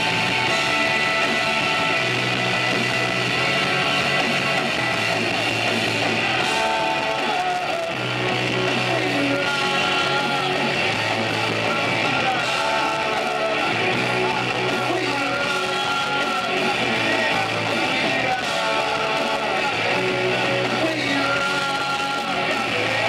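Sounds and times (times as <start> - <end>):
drums: 0.0 - 23.0
electric guitars: 0.0 - 23.0
person singing into microphone: 6.1 - 23.0.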